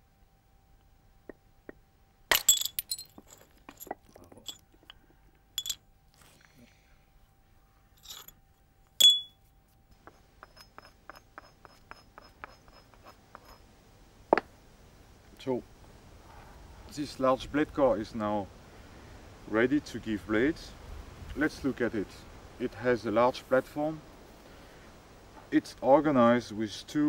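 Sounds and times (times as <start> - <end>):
hammer striking flint: 2.3 - 5.0, 9.0 - 9.4, 10.0 - 13.6.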